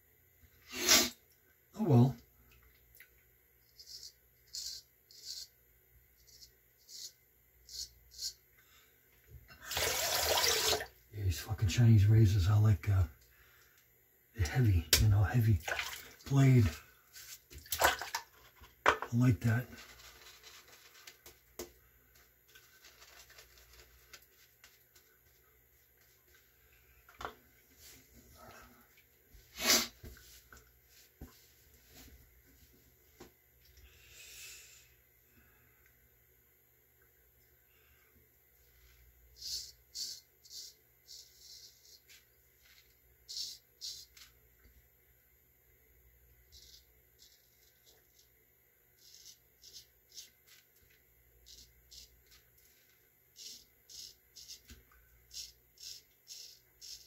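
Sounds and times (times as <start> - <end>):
faint handling noise: 18.3 - 29.5.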